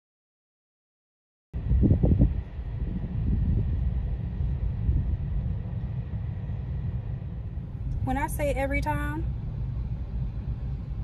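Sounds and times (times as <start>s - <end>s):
freight train rumbling past: 1.6s - 11.0s.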